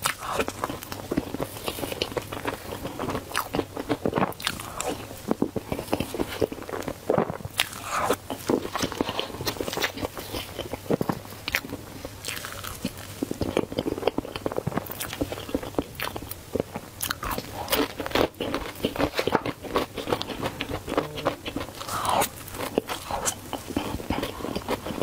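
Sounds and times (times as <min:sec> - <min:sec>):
woman eating cake: 0:00.0 - 0:25.0.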